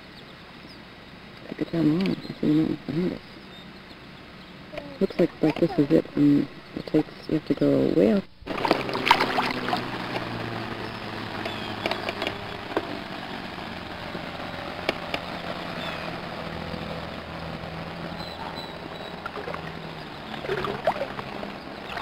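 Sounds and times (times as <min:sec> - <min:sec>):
low steady hum: 0:00.0 - 0:22.0
water lapping and sloshing: 0:08.4 - 0:10.6, 0:18.4 - 0:22.0
small sharp splashes: 0:08.5 - 0:10.4, 0:19.2 - 0:22.0.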